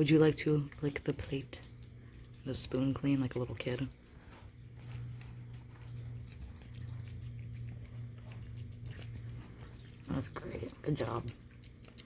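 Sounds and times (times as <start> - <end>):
cat chewing and licking food: 0.0 - 12.0
low hum: 0.0 - 12.0.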